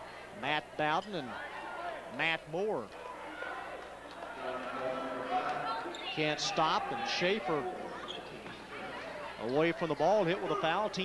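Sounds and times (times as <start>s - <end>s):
crowd murmur: 2.9s - 11.0s.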